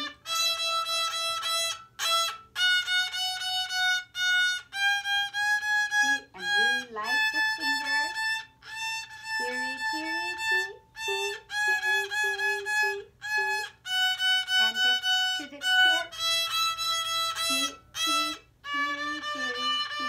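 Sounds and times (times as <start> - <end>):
violin playing a scale: 0.0 - 20.0.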